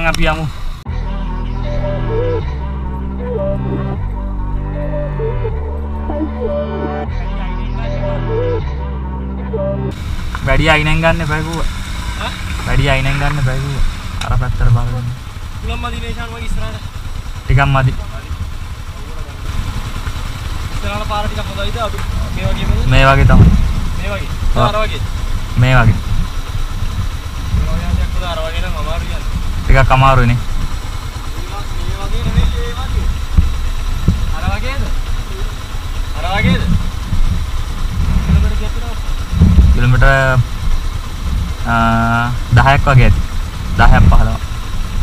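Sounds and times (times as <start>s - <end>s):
motorcycle engines idling: 0.0s - 45.0s
person holding long note: 0.9s - 10.0s.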